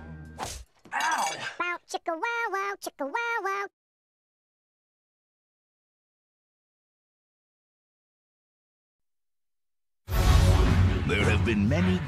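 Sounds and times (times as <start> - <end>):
high-pitched chipmunk voices: 1.6 - 3.7
background music: 10.1 - 12.0.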